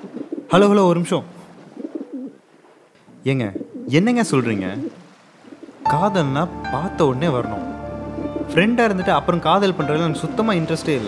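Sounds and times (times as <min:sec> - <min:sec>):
pigeons cooing: 0:00.0 - 0:00.5, 0:01.5 - 0:02.4, 0:03.5 - 0:04.0, 0:04.8 - 0:05.9.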